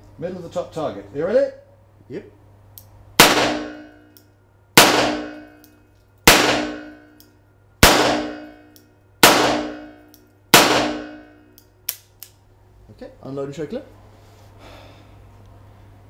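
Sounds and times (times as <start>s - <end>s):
revolver shots echoing indoors: 2.8s - 12.4s.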